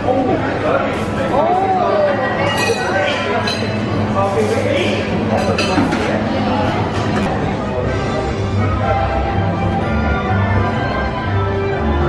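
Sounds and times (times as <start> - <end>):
hubbub of voices: 0.0 - 12.0
dishware clinking: 2.4 - 3.9, 5.3 - 6.2.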